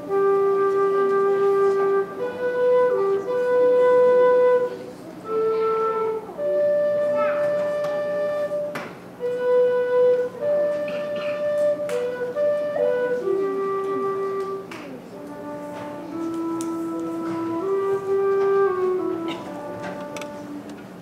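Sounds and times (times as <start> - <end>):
low whistle playing slow tune: 0.0 - 20.7.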